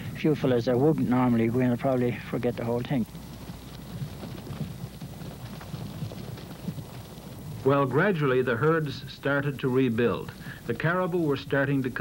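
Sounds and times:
hooves walking: 0.0s - 12.0s.

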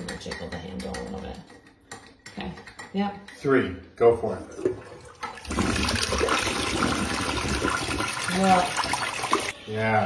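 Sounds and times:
toilet flushing: 4.2s - 9.6s.

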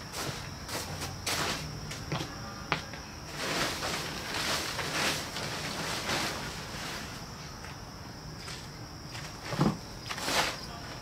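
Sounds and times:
plastic tarp rustling: 3.3s - 7.3s, 9.2s - 11.0s.

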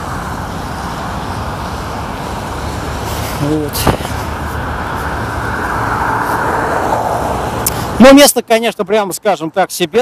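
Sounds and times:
cars rushing past on highway: 0.0s - 8.5s.

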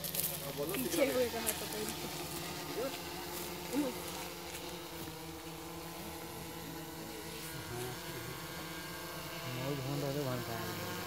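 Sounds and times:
drone rotors humming: 0.0s - 11.0s.

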